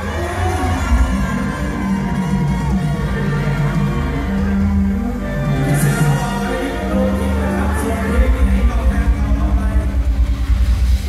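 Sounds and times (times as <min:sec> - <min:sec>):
live band instrumental: 0:00.0 - 0:11.0.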